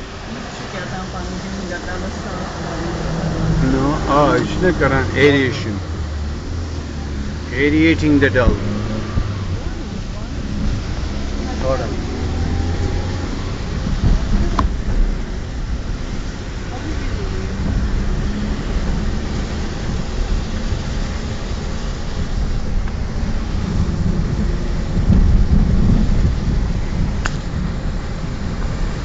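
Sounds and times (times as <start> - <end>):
car engine rumble: 0.0 - 29.0
road noise: 0.0 - 29.0.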